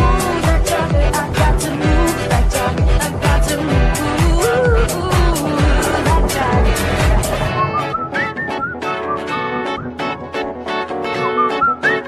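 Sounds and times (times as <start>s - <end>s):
heavy kick-drum beat: 0.0s - 7.6s
guitar accompaniment: 0.0s - 12.0s
whistled melody: 7.3s - 10.2s, 11.1s - 12.0s.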